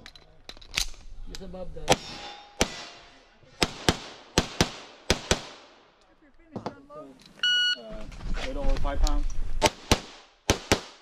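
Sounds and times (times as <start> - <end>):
pistol shots with echo: 1.9 - 3.0, 3.6 - 5.8, 9.6 - 11.0
electronic beep: 7.4 - 7.8.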